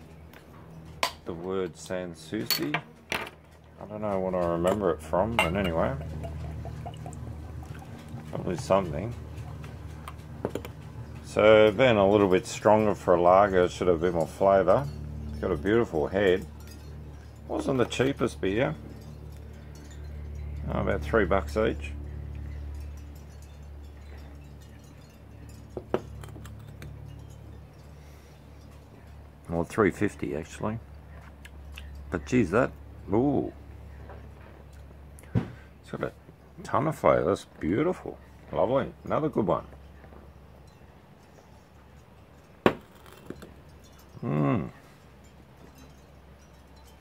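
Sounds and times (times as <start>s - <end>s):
low steady hum: 0.0s - 47.0s
glass clinking on glass table: 2.4s - 3.3s, 4.7s - 8.7s, 22.8s - 27.8s
beer glass clinking: 4.1s - 28.7s.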